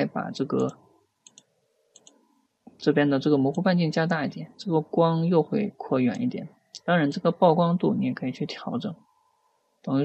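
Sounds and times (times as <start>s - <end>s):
computer mouse clicking: 0.6s - 2.3s.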